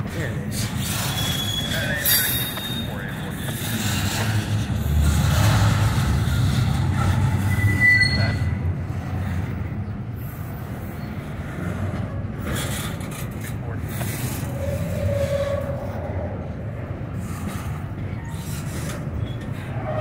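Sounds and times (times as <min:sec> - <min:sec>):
steel wheels rumbling on rail: 0:00.0 - 0:20.0
high-pitched wheel squeals: 0:00.8 - 0:08.8, 0:14.4 - 0:16.1, 0:18.2 - 0:20.0.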